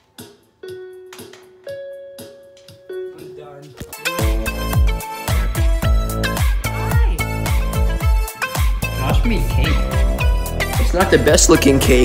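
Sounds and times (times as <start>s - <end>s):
keyboard notes: 0.0s - 12.0s.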